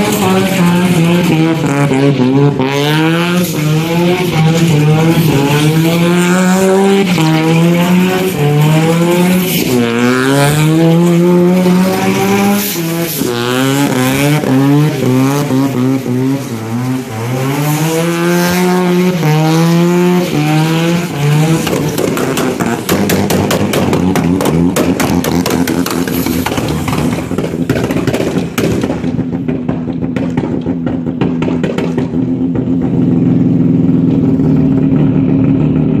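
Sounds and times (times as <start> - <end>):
rotary engine revving hard: 0.0 - 36.0.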